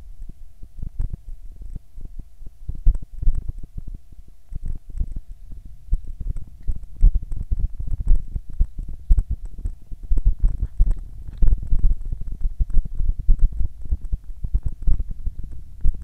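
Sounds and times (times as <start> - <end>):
faint steady hum: 0.0 - 16.0
microphone buffeting and thumping: 0.0 - 16.0.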